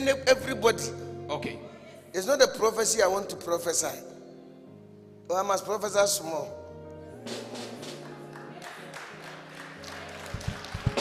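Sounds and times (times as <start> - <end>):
low keyboard background music: 0.0 - 11.0.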